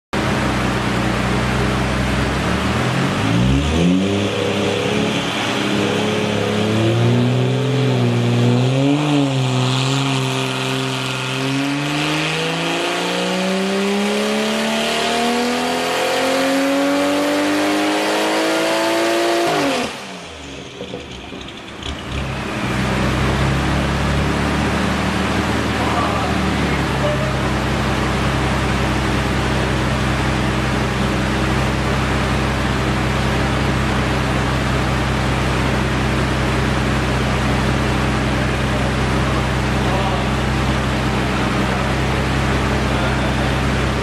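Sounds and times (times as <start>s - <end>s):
car engine revving: 0.2s - 44.0s.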